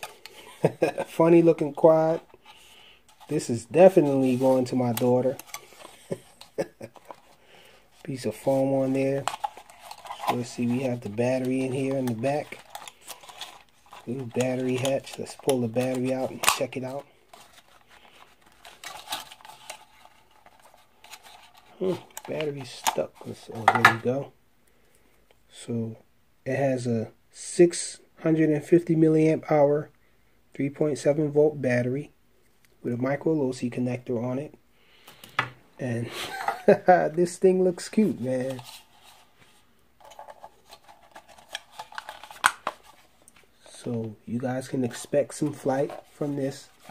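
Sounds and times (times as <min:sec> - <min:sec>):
plastic clicks and scrapes: 0:09.2 - 0:23.0.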